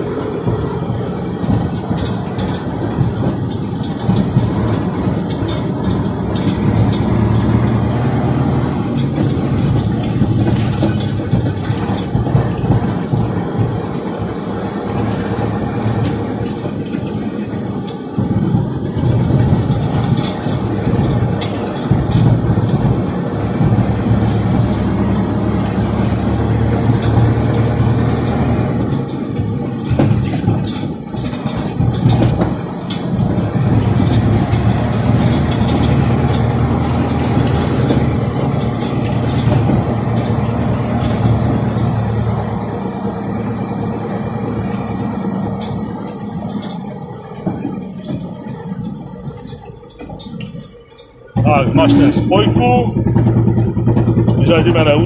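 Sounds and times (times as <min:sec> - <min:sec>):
diesel truck engine running: 0:00.0 - 0:55.0
knocks and rattles: 0:00.0 - 0:55.0.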